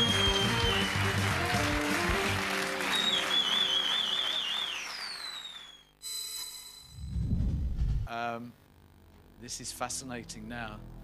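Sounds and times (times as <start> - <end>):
game show theme music: 0.0 - 2.9.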